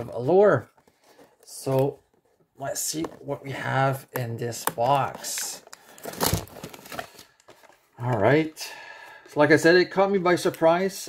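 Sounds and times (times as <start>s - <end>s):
cardboard rustle: 5.0s - 8.4s.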